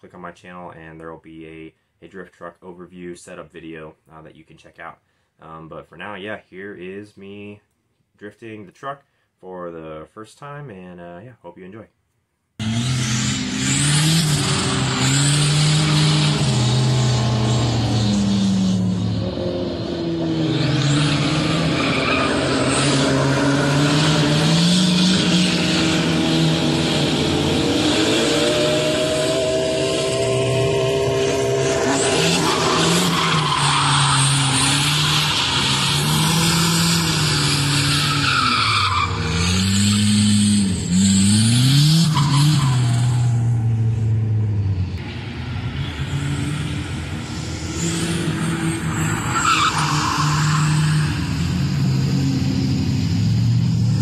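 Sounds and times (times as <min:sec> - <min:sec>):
tyres squealing and skidding: 0:12.6 - 0:44.1, 0:46.0 - 0:53.2
truck engine revving: 0:12.6 - 0:54.0.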